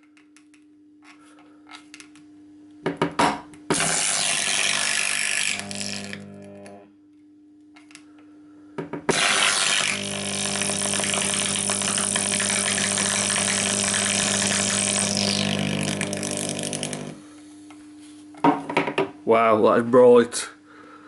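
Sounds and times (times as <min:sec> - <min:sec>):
mains buzz: 0:00.4 - 0:18.0
carbon arc crackling hiss: 0:09.1 - 0:17.2.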